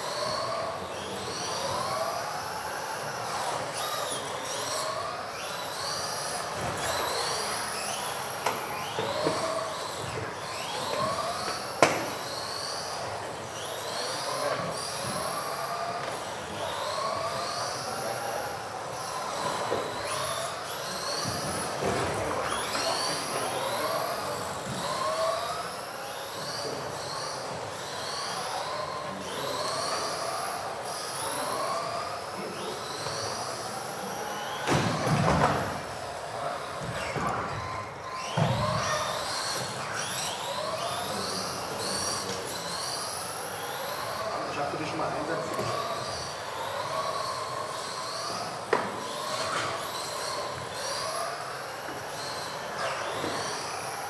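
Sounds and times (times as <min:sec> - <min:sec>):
electric rc cars whining: 0:00.0 - 0:54.0.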